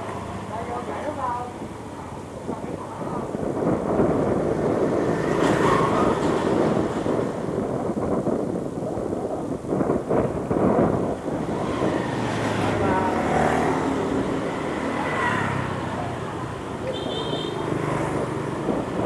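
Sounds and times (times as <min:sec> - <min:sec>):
motorbike engines passing: 0:00.0 - 0:08.1, 0:10.2 - 0:19.0
street traffic: 0:00.0 - 0:19.0
wind buffeting microphone: 0:00.0 - 0:19.0.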